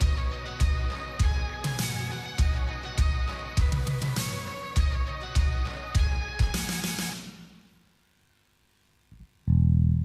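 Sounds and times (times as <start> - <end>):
bass guitar low held note: 9.5 - 10.0.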